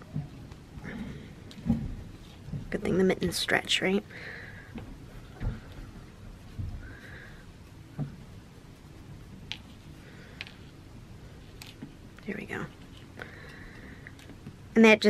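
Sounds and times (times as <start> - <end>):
soft thumps: 0.0 - 3.0, 4.7 - 8.5
fabric rustling: 0.0 - 14.7.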